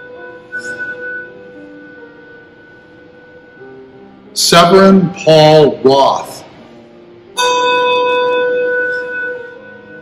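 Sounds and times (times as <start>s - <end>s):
brass handbell ringing: 7.4s - 10.0s.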